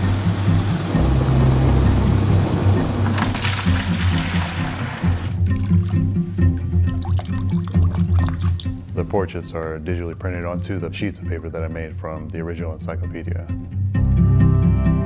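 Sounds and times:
water pouring and splashing: 0.0s - 9.0s
background music with low notes: 0.0s - 15.0s
light wet sounds: 5.3s - 9.2s.

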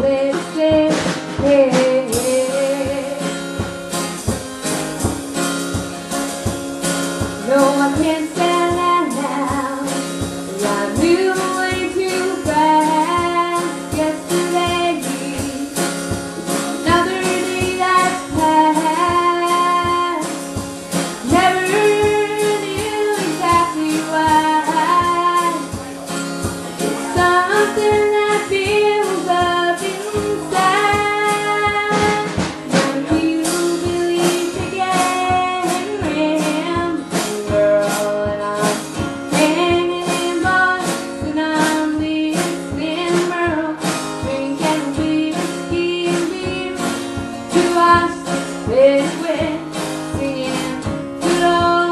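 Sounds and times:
drum kit: 0.0s - 51.9s
strummed acoustic guitar: 0.0s - 51.9s
woman singing country song: 0.0s - 51.9s.

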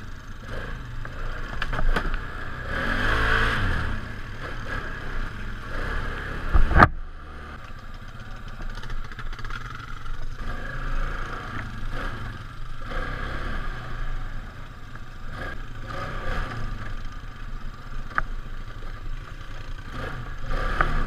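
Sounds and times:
quad bike engine running: 0.0s - 21.0s
clatter over bumps: 0.5s - 2.3s, 4.4s - 13.0s.

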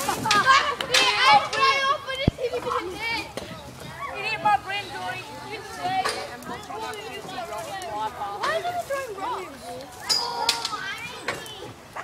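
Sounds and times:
children shouting: 0.0s - 6.6s.

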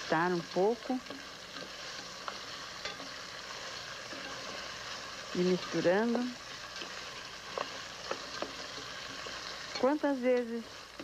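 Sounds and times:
sausage sizzling in a pot: 0.0s - 11.0s.

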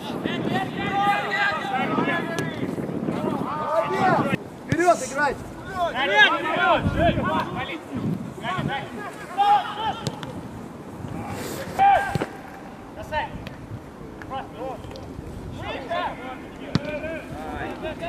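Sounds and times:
players shouting: 0.0s - 10.4s, 11.1s - 13.3s
ball being kicked: 16.7s - 17.0s.

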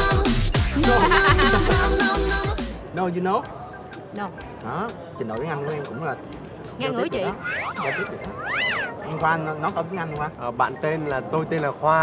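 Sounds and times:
high-pitched meow-like squeals: 7.3s - 9.1s.

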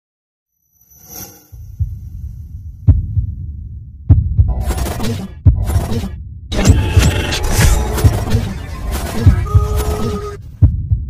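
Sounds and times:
pulsing beats: 1.5s - 11.0s
low bass rumble: 1.6s - 8.3s.

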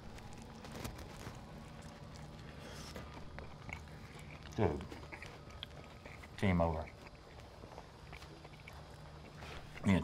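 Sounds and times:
crunching of sandwich bites: 0.0s - 9.9s
low steady hum: 0.0s - 10.0s.

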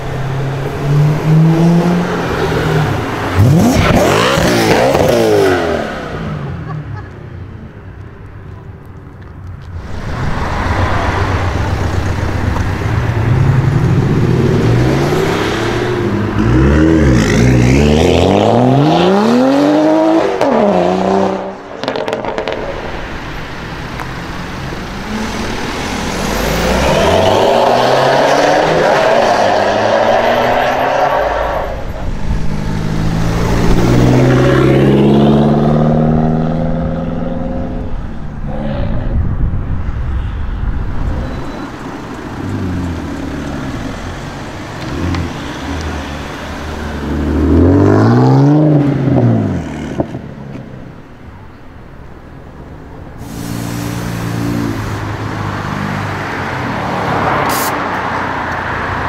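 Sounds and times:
car engines revving: 0.0s - 40.1s, 40.7s - 59.0s.

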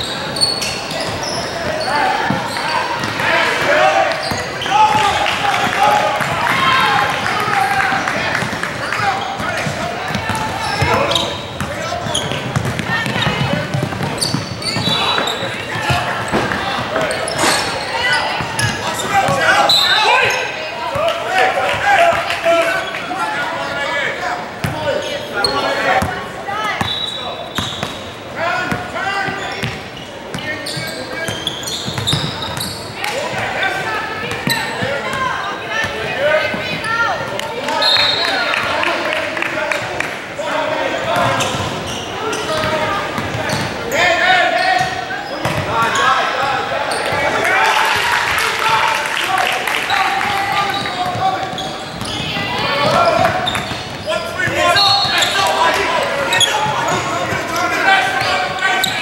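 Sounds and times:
sneakers squeaking: 0.0s - 23.2s, 24.5s - 38.7s, 40.8s - 47.5s, 49.8s - 59.0s
echoing crowd shouting: 0.0s - 29.6s, 32.2s - 59.0s
basketball dribbling on hardwood: 12.5s - 14.9s.

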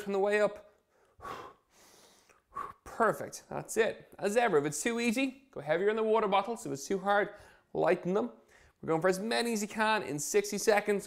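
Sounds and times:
man breathing hard: 0.8s - 2.9s.

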